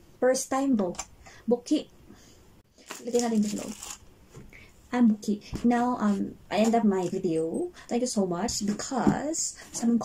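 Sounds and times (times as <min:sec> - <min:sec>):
woman speaking: 0:00.2 - 0:01.9, 0:03.0 - 0:03.8, 0:04.9 - 0:10.0.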